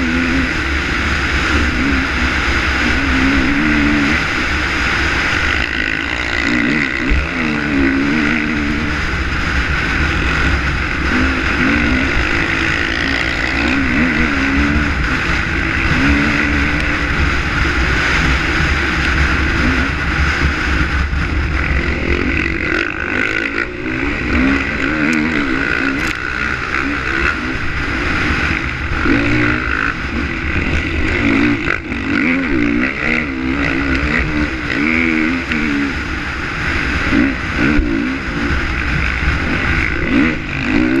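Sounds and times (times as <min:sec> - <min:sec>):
dirt bike engine revving: 0:00.0 - 0:41.0
wind and riding noise: 0:00.0 - 0:41.0.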